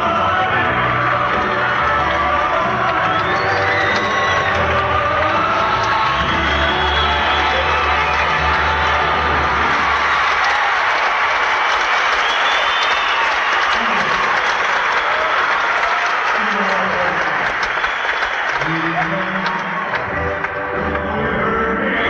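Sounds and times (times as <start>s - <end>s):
audience applauding and cheering: 0.0s - 22.0s.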